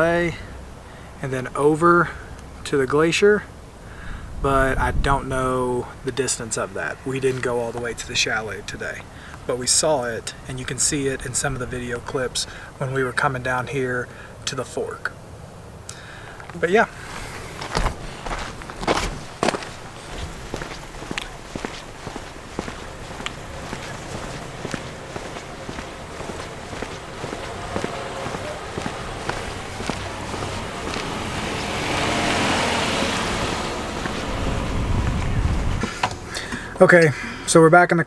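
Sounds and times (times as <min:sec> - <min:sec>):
footsteps on asphalt: 0:07.2 - 0:09.5, 0:16.9 - 0:36.1
rushing noise: 0:16.9 - 0:36.4.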